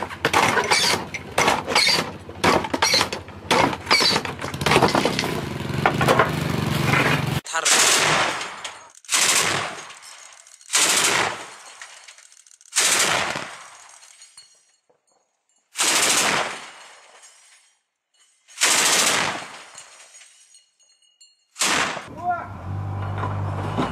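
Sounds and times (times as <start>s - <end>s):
autocannon bursts: 0.8s - 10.0s, 10.6s - 11.7s, 12.5s - 13.8s, 15.8s - 16.6s, 18.6s - 19.5s
metallic clatter of ammunition belt: 8.4s - 15.8s, 16.6s - 18.8s, 19.4s - 21.6s.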